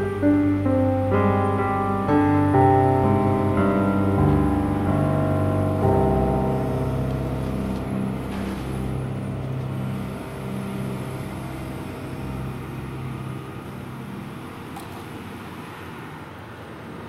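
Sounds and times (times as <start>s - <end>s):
excavator diesel engine running: 0.0s - 16.9s.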